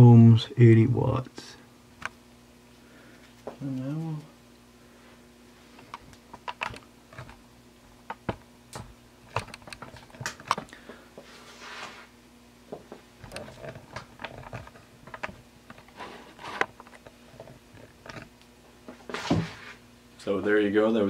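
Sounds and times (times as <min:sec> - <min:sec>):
faint steady hum: 0:00.0 - 0:21.0
handling clicks and knocks: 0:05.9 - 0:07.4, 0:08.1 - 0:10.8, 0:12.8 - 0:15.9, 0:16.6 - 0:18.3.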